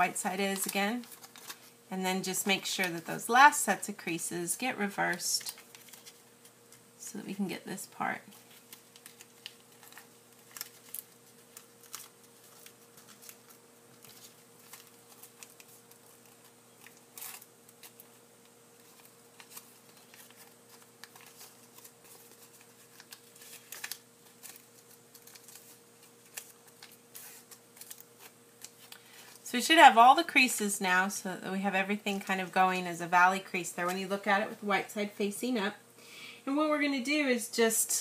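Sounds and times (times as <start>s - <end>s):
paper being folded: 0.2s - 3.2s, 5.1s - 6.8s, 8.3s - 29.4s.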